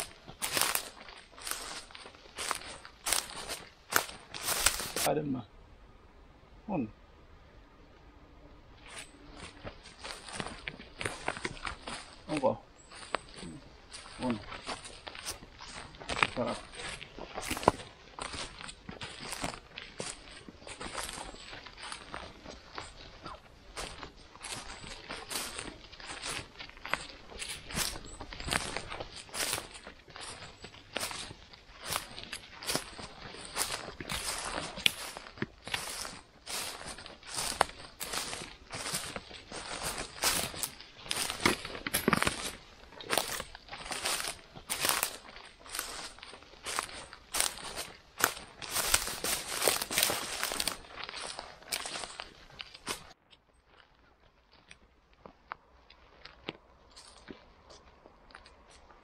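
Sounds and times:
moss crackling and rustling: 0:00.0 - 0:05.1, 0:08.8 - 0:53.2.

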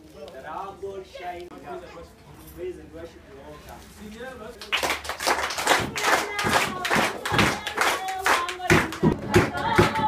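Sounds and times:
congregation clapping in time: 0:04.6 - 0:10.0
voices singing along: 0:05.7 - 0:10.0.

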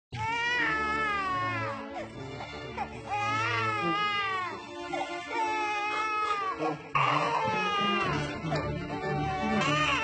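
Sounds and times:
baby crying: 0:00.2 - 0:10.0.

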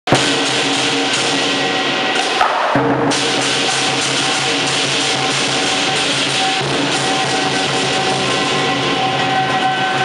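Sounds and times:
big drum beating: 0:00.1 - 0:10.0
cymbals clashing: 0:00.1 - 0:10.0.

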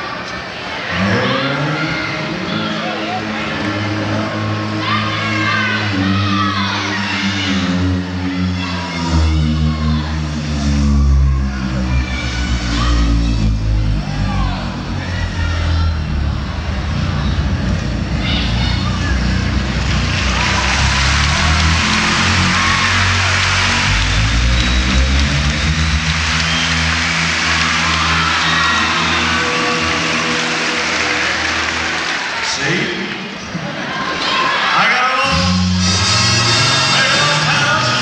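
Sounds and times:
arena crowd cheering and screaming: 0:00.0 - 0:38.0
band holding sustained chords: 0:00.8 - 0:33.4.

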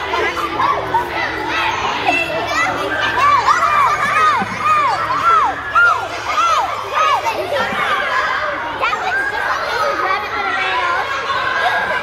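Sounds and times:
children shouting: 0:00.0 - 0:12.0.

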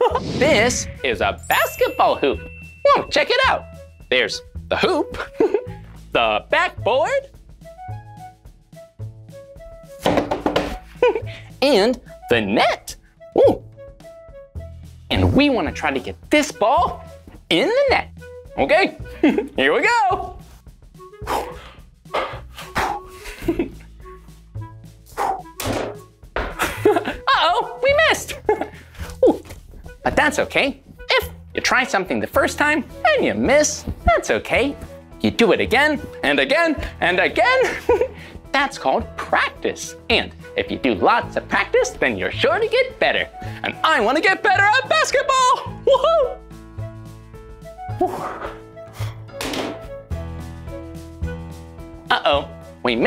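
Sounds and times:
background music: 0:00.0 - 0:53.0
small ball thudding: 0:10.0 - 0:10.8
ball hitting hoop: 0:25.6 - 0:26.6.

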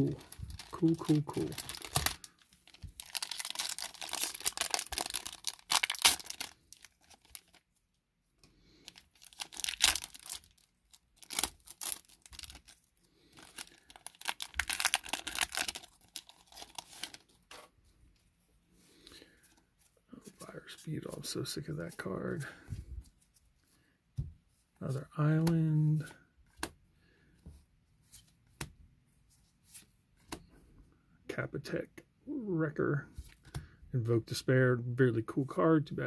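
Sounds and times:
foil wrapper tearing and crinkling: 0:00.0 - 0:07.6, 0:08.9 - 0:17.3.

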